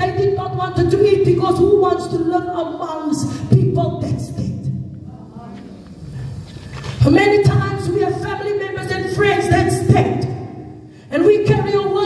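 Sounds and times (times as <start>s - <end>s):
woman speaking through microphone: 0.0s - 5.7s, 7.0s - 12.0s.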